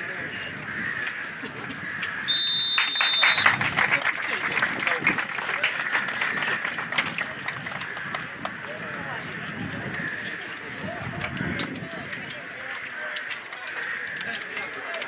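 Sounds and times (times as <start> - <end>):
crowd voices: 0.0 - 15.0
referee's whistle blast: 2.3 - 3.6
spectators clapping: 2.4 - 8.8.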